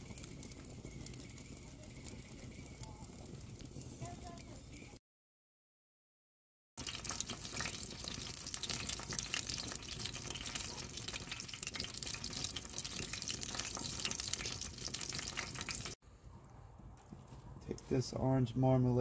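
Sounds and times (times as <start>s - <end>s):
fat sizzling in a pan: 0.0s - 4.9s, 6.8s - 16.0s.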